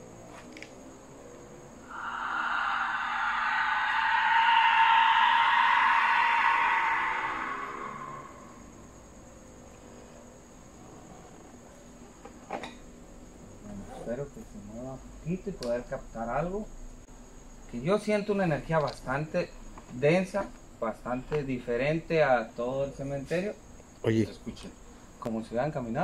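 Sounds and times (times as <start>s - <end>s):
whistle shrieking: 1.8s - 9.2s.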